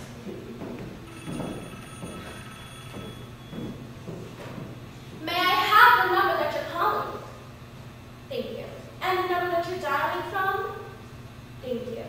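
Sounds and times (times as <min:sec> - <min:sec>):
telephone ringing: 0:01.1 - 0:03.8.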